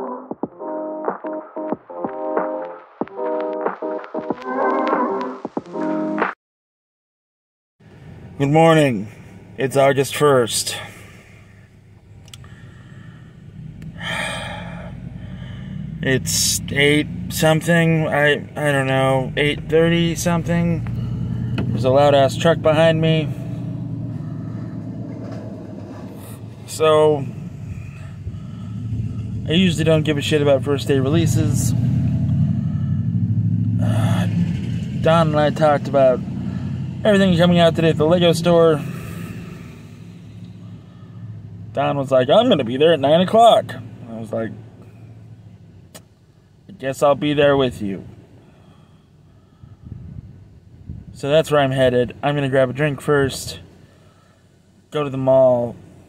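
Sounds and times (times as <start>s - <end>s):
truck engine rumble: 7.8s - 56.0s
low vehicle hum inside car: 8.0s - 34.4s, 35.0s - 56.0s
man sighing: 12.4s - 15.9s.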